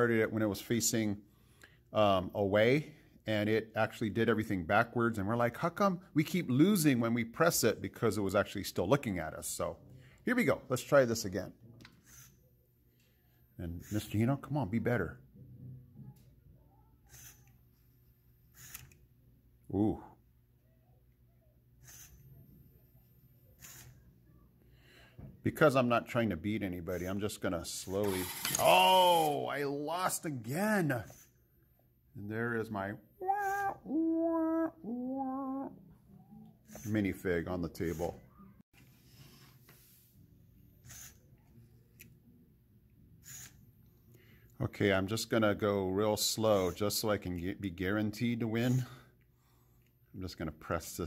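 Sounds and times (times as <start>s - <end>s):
short breaths: 24.6s - 25.4s.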